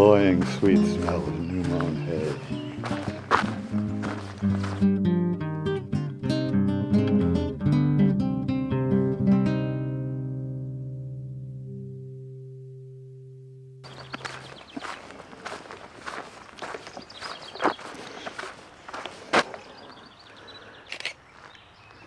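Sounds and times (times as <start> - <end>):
footsteps on dirt track: 0.0 - 5.0, 13.8 - 22.0.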